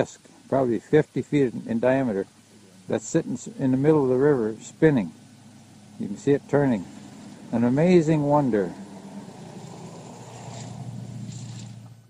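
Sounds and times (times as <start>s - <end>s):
engine idling hum: 0.0s - 12.0s
faint outdoor background noise: 0.0s - 12.0s.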